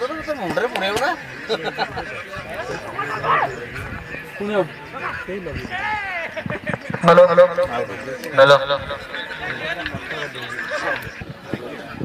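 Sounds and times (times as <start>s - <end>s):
commentary: 0.0s - 12.0s
men calling out: 0.1s - 11.0s.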